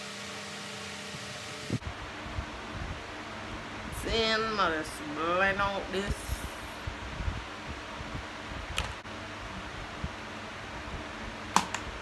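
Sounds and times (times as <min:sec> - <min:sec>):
room fan hissing: 0:00.0 - 0:12.0.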